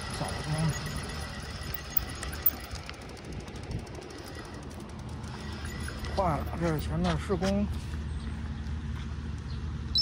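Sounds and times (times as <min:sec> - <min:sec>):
bicycle tyre rumble: 0:00.0 - 0:09.6.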